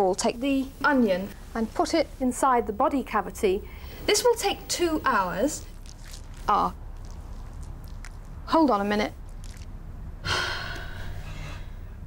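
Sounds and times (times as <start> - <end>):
faint low hum: 0.0 - 12.0
woman sighing: 10.2 - 11.8.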